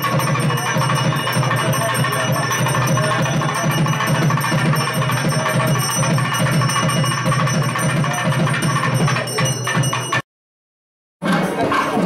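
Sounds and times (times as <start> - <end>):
festival music with fast drums: 0.0 - 10.2.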